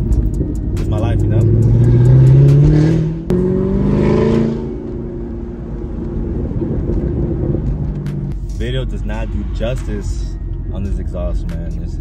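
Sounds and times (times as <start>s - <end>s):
car engine accelerating: 0.0s - 11.4s.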